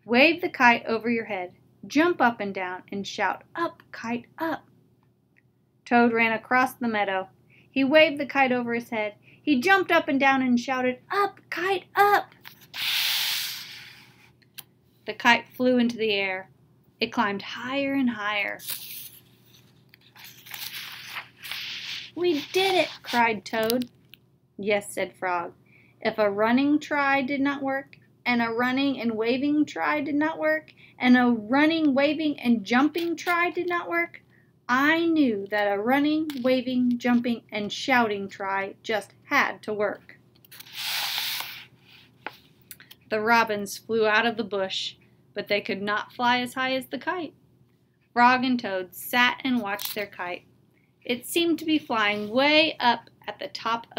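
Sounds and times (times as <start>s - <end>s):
paper pages rustling: 18.6s - 23.3s.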